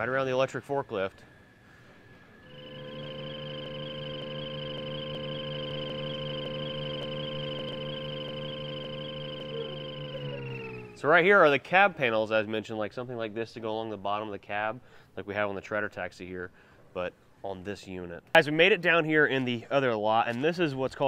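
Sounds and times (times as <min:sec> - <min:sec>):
electric scooter whine: 0:00.0 - 0:11.6.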